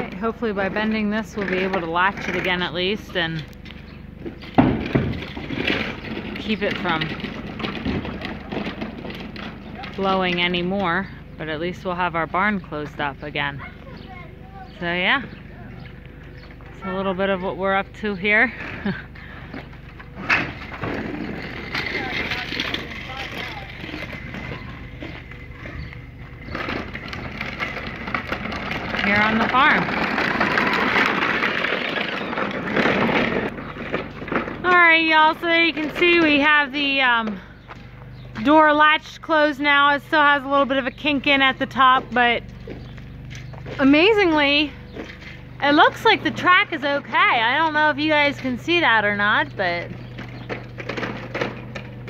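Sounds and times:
rough rolling wheels rumble: 0.0s - 52.0s
faint voices: 21.6s - 27.0s.

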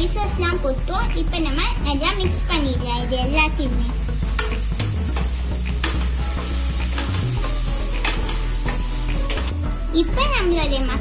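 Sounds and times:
hot oil sizzling: 0.0s - 11.0s.

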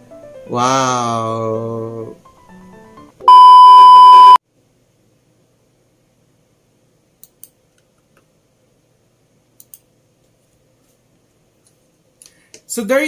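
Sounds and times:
electronic beep: 3.3s - 4.4s
faint clicks: 9.6s - 9.9s.

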